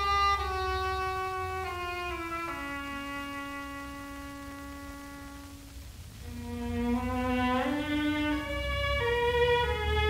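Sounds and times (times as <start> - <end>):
strings and woodwind ensemble: 0.0 - 10.0.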